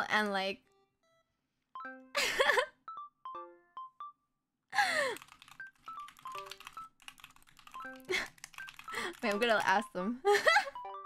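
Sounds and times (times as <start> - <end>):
soft background music: 0.0 - 4.4, 5.5 - 11.0.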